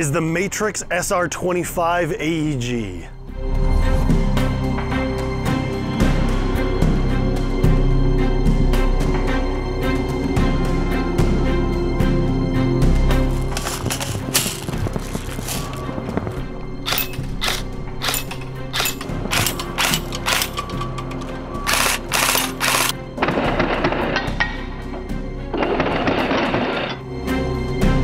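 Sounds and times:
background music: 0:00.0 - 0:28.0.

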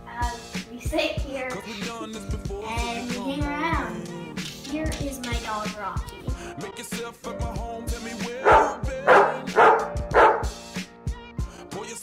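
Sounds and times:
hip-hop music: 0:00.0 - 0:12.0
dog barking: 0:08.4 - 0:10.6.

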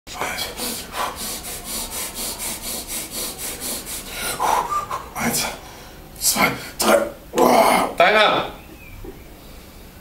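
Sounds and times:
rapid forceful breaths: 0:00.3 - 0:06.8.

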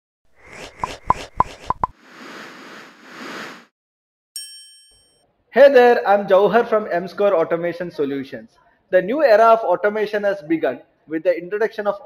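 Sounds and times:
soft upward swishes: 0:00.3 - 0:03.7.

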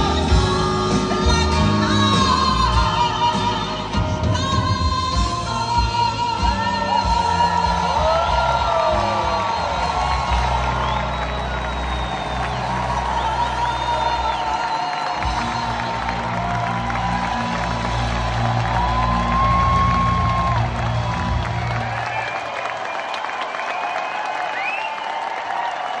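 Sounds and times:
live band playing: 0:00.0 - 0:22.3
audience applauding and cheering: 0:00.0 - 0:26.0.

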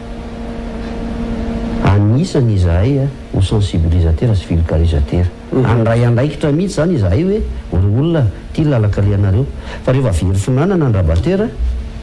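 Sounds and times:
steady low hum: 0:00.0 - 0:12.0
man speaking: 0:01.8 - 0:11.6.

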